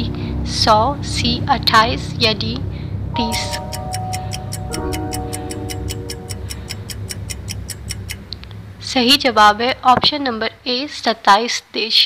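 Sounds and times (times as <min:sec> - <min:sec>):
held electronic notes: 0:03.0 - 0:08.8
clock-like ticking: 0:03.2 - 0:08.4.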